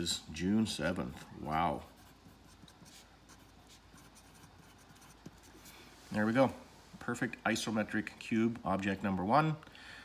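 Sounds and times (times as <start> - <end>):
pencil scratching on paper: 0.9 - 5.9.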